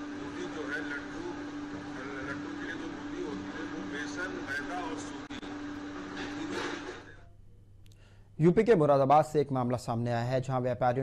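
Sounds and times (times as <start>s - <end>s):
low even hum: 0.0s - 9.0s.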